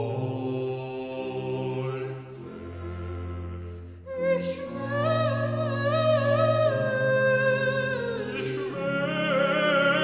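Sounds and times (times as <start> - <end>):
singers holding sustained notes: 0.0 - 10.0.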